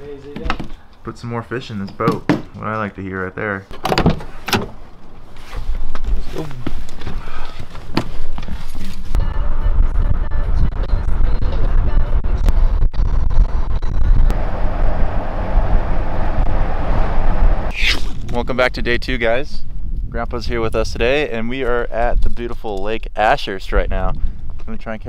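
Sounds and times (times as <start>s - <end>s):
car engine and road noise: 10.1s - 17.7s.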